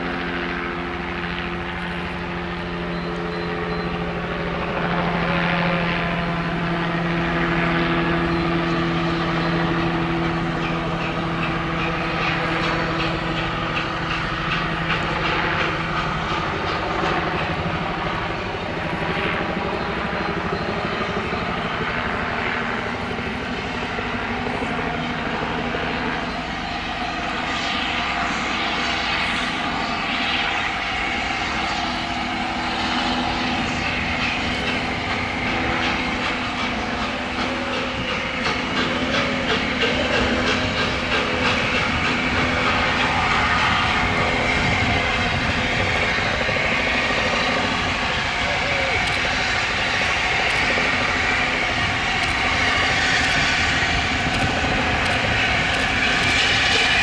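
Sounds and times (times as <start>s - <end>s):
train rumbling: 0.0s - 57.0s.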